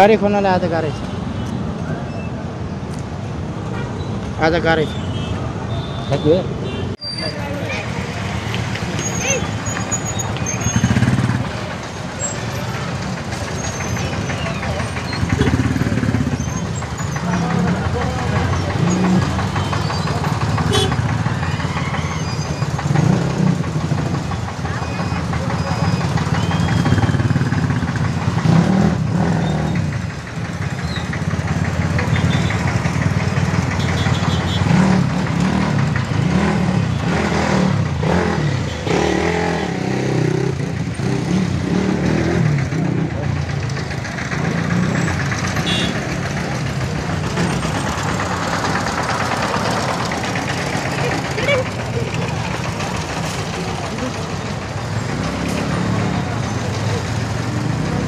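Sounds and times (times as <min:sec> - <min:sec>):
motorcycle and bus engines: 0:00.0 - 0:58.0.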